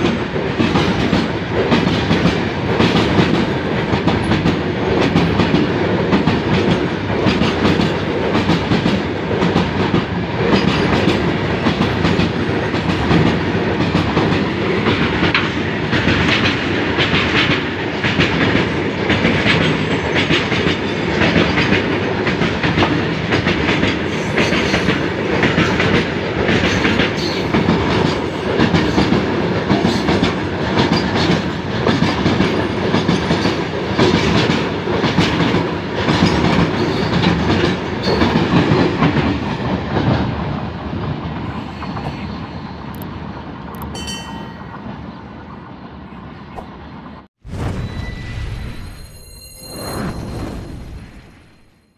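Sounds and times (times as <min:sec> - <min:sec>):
wheels clickety-clack over rail joints: 0:00.0 - 0:45.6
freight train rumbling past: 0:00.0 - 0:51.7.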